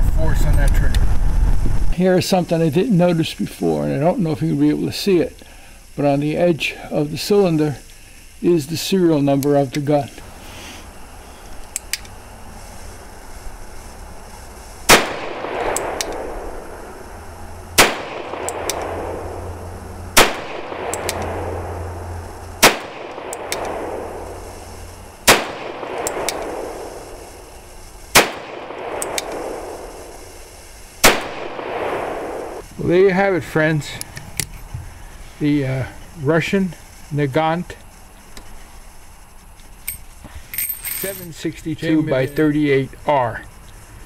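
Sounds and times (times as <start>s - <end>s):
revolver gunshots with echo: 14.9s - 17.0s, 17.7s - 24.6s, 25.2s - 27.5s, 28.1s - 30.2s, 31.0s - 32.6s.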